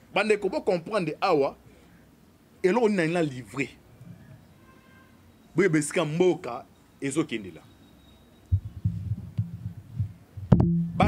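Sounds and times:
man speaking: 0:00.1 - 0:01.6, 0:02.6 - 0:03.8, 0:05.6 - 0:07.7.

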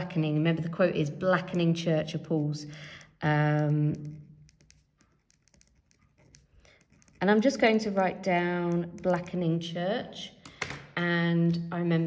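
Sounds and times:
pen writing on paper: 0:03.6 - 0:07.4.

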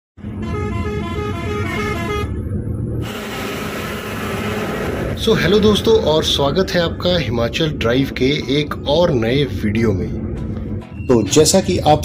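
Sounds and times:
road and engine noise: 0:00.2 - 0:12.0.

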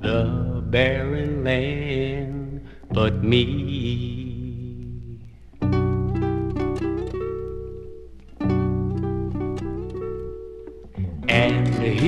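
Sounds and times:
low held notes: 0:00.0 - 0:12.0
plucked guitar chords: 0:00.0 - 0:12.0
folk-rock music: 0:05.6 - 0:12.0.

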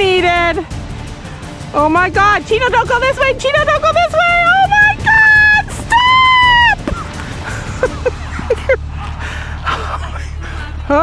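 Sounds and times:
woman screaming: 0:04.4 - 0:06.9.

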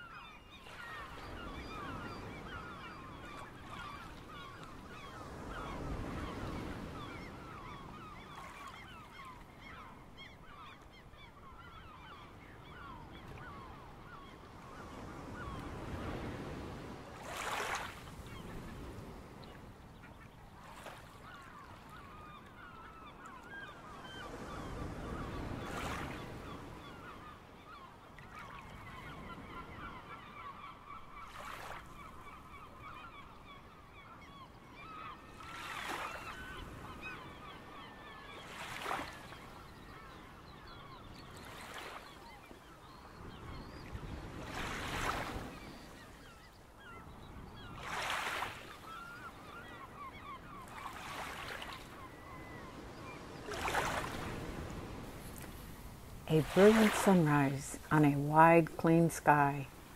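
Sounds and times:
waves breaking: 0:15.3 - 0:19.5, 0:44.3 - 0:45.8, 0:47.7 - 0:49.2, 0:50.0 - 0:59.9
waterbirds honking: 0:44.6 - 0:59.9.

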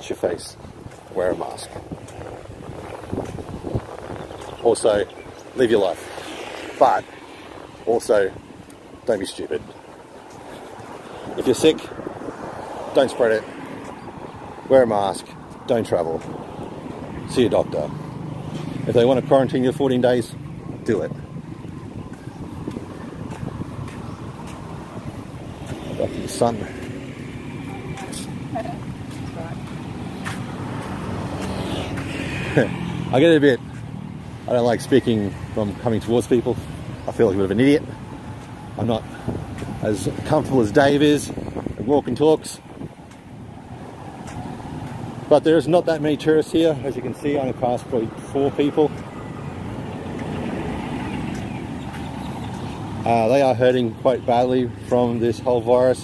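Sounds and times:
wind rumble on microphone: 0:00.0 - 0:53.1
footsteps on paved path: 0:00.0 - 0:56.0
road traffic hum: 0:00.0 - 0:56.0.

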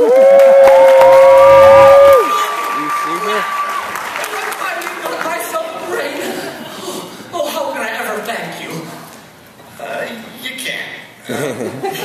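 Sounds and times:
loud held woo: 0:00.0 - 0:03.7
high-pitched held whoop: 0:00.0 - 0:03.8
audience applause: 0:00.0 - 0:05.5.

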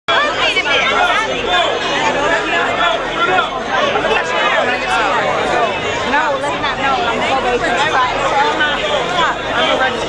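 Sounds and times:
crowd chatter: 0:00.1 - 0:10.0.

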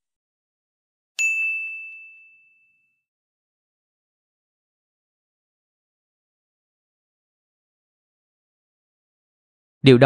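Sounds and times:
bright ding: 0:01.2 - 0:03.0.

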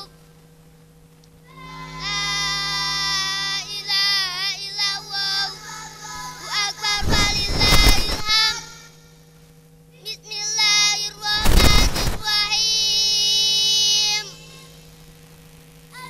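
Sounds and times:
electrical hum: 0:00.0 - 0:16.0
loud noisy burst: 0:01.5 - 0:09.0, 0:11.3 - 0:12.8
girl chanting recitation: 0:03.1 - 0:09.1, 0:10.0 - 0:14.8.

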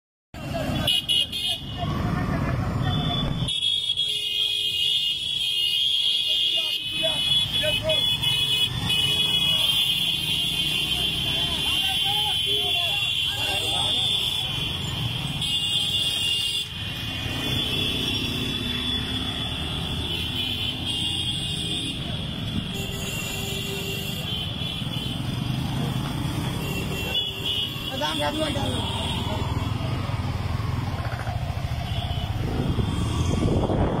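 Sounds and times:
motorcycle engines rumbling: 0:00.4 - 0:34.0
motorcycles running at low speed: 0:24.8 - 0:27.3, 0:28.3 - 0:34.0.

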